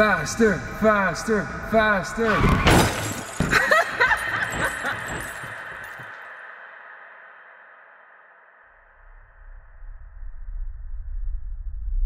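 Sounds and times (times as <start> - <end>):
broken glass clattering: 2.3 - 6.2.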